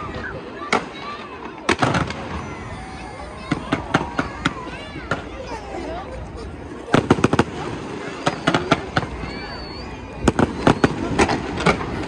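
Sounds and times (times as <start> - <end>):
fireworks bangs: 0.6 - 5.6, 6.9 - 12.0.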